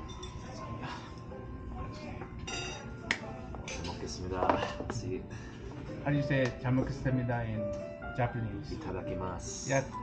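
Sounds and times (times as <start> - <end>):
spoon and chopsticks clinking dishes: 0.0 - 0.7, 2.4 - 5.0
background music: 0.0 - 10.0.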